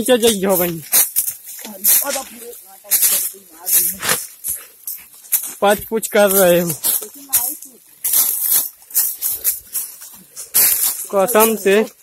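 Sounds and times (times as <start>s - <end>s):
people talking: 0.0s - 0.9s, 1.6s - 4.2s, 5.6s - 7.8s, 11.0s - 12.0s
dry leaves rustling and crackling: 0.0s - 12.0s.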